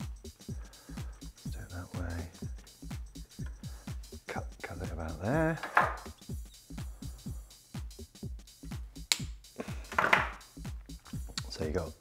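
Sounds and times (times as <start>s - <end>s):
electronic music with kick drum: 0.0s - 12.0s.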